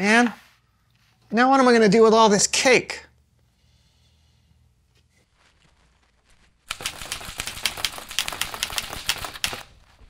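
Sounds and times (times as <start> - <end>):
typewriter keys clacking: 6.7 - 9.7.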